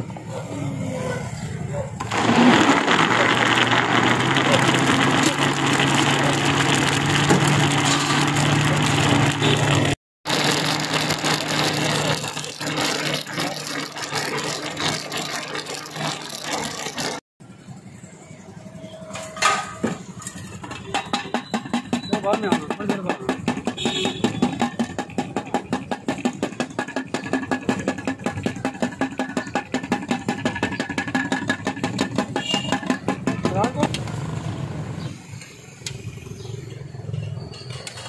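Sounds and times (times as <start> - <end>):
electric blender motor running: 2.0 - 17.2.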